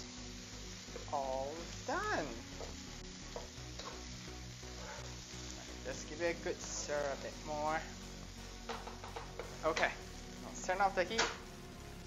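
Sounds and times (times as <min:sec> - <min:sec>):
rice sizzling in a wok: 0:00.0 - 0:12.0
spatula stirring rice: 0:02.5 - 0:05.8
spatula knocking against pan: 0:08.7 - 0:09.6.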